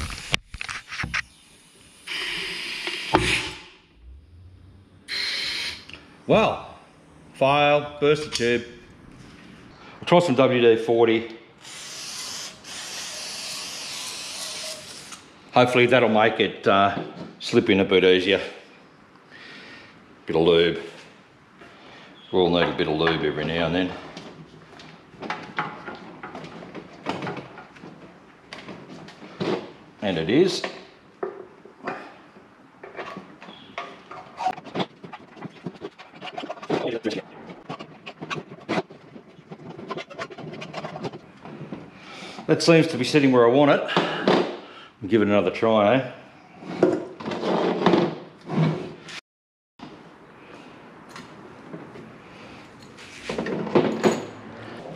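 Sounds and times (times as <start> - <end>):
rubber scraping on metal tank: 33.5 - 41.7.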